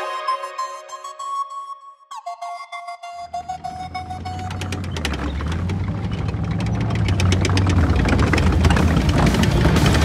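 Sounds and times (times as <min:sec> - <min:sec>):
low droning bass: 0:03.3 - 0:10.0.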